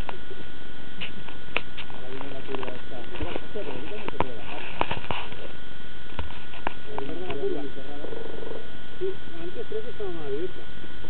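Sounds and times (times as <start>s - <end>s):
muffled indistinct talking: 0.0s - 10.8s.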